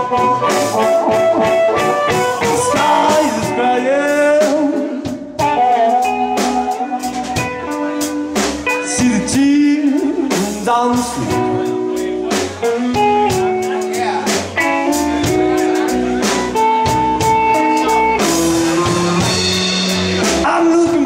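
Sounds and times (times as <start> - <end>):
harmonica bending notes: 0.0 - 3.8
drum kit slow beat: 0.0 - 21.0
electric bass: 0.0 - 21.0
electric guitar: 0.0 - 21.0.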